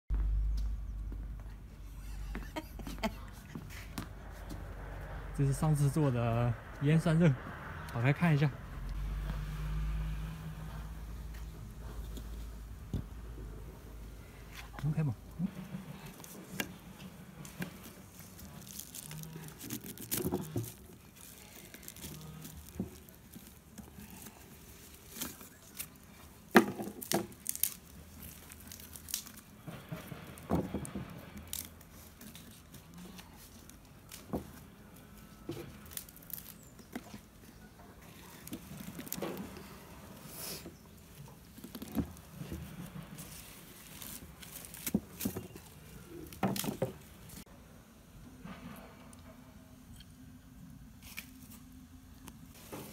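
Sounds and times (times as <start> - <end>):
leaves rustling and tearing: 14.2 - 47.4, 51.0 - 51.8.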